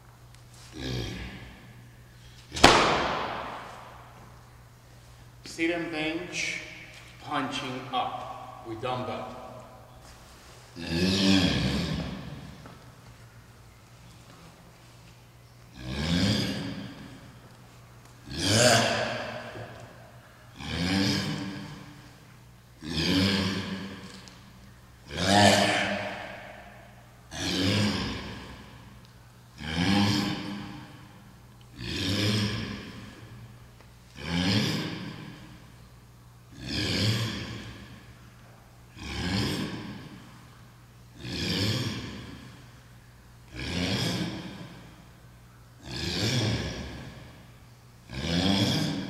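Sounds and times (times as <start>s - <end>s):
person exhaling hard: 25.1s - 28.8s.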